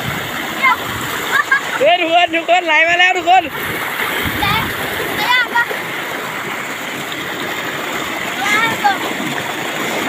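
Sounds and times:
water rushing: 0.0s - 10.0s.

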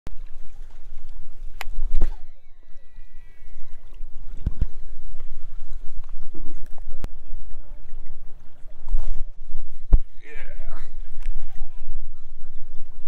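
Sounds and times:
reel spool whine: 0.1s - 9.9s
wind rumble on microphone: 0.1s - 13.0s.

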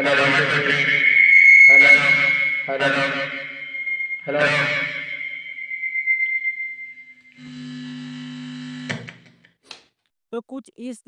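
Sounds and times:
high ringing tone: 0.0s - 8.9s.

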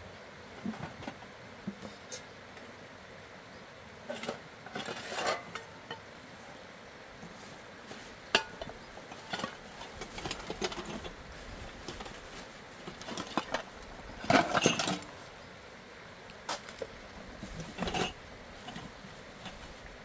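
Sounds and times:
metal pots and lids clinking: 4.1s - 6.1s, 8.3s - 11.1s, 13.0s - 15.1s, 17.7s - 18.8s
rustling: 7.2s - 15.4s, 16.5s - 20.0s.

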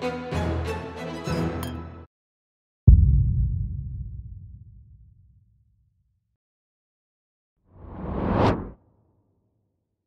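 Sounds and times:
rising trailer whoosh: 7.8s - 8.8s.

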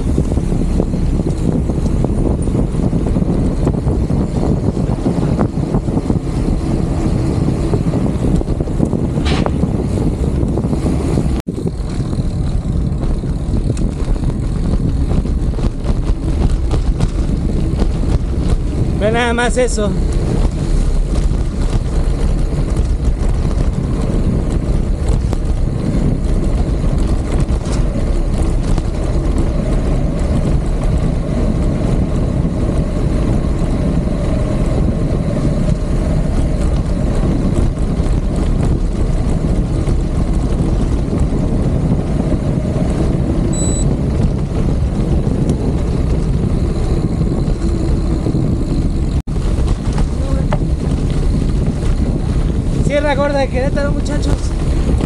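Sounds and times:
bike tyres on gravel: 0.0s - 55.0s
wind rumble on microphone: 0.0s - 55.0s.

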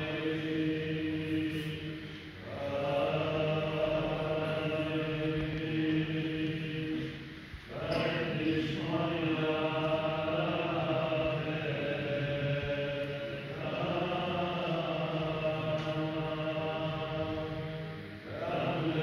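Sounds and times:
voices chanting liturgy: 0.0s - 19.0s.

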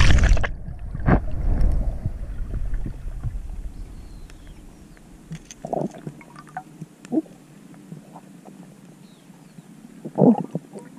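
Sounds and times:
underwater splashy rushes: 0.0s - 4.0s
faint low hiss: 0.0s - 10.9s.

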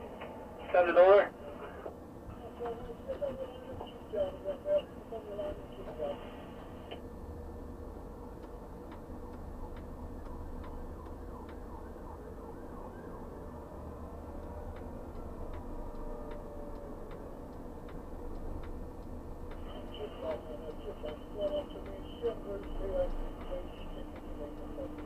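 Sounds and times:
crane drives humming: 0.0s - 25.0s
regular clicking: 8.3s - 11.7s, 14.3s - 25.0s.

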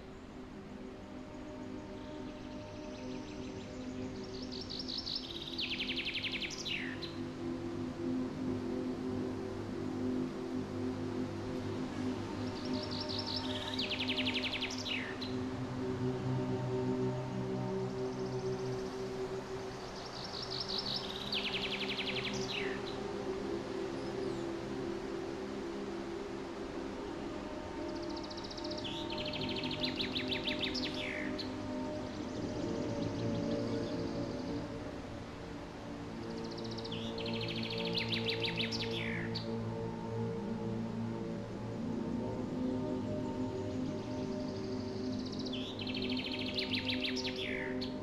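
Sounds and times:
soft sustained music: 0.0s - 48.0s
songbird singing: 0.0s - 48.0s.

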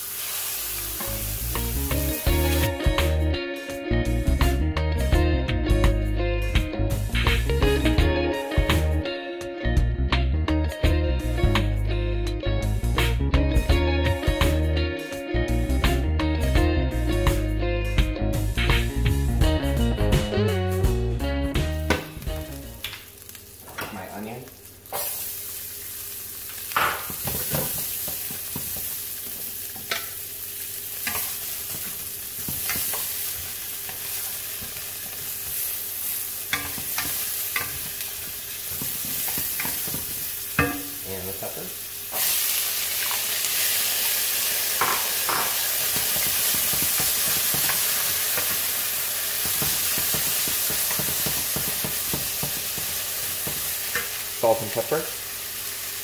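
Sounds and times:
onion sizzling in hot oil: 0.0s - 3.7s, 22.1s - 56.0s
guitar background music: 0.3s - 56.0s.

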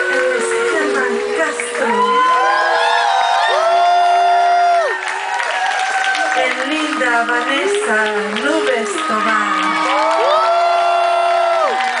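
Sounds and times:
voices singing in harmony: 0.0s - 4.3s
crowd cheering: 0.0s - 12.0s.

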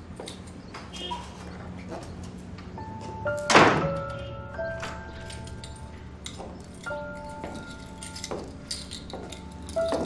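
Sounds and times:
soft music with held notes: 2.6s - 10.0s
wooden door thunk shut: 3.5s - 4.1s.

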